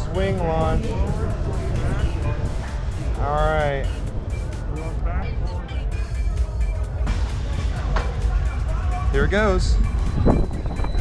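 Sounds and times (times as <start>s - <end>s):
faint music: 0.0s - 11.0s
roller coaster train rumble: 0.0s - 11.0s
voices: 0.0s - 11.0s
wind rumble on microphone: 0.0s - 11.0s.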